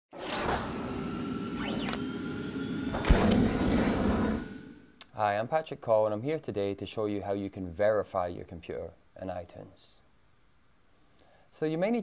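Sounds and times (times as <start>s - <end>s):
deep hit: 2.9s - 4.5s.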